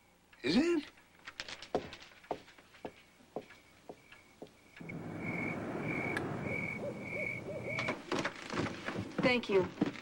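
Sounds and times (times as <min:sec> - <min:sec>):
crickets chirping: 0:02.3 - 0:09.1
low rumble: 0:04.8 - 0:08.1
owl hooting softly: 0:05.2 - 0:08.0.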